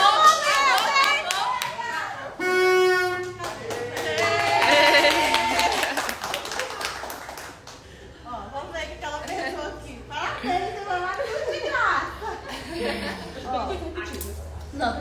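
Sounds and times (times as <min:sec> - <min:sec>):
people clapping and cheering: 0:00.0 - 0:02.4, 0:03.1 - 0:08.0
horn blast: 0:02.3 - 0:03.6.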